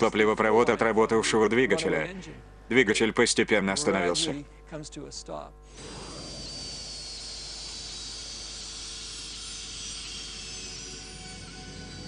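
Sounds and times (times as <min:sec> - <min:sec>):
steady hiss: 0:05.3 - 0:12.0
jet engine whine falling: 0:05.7 - 0:12.0.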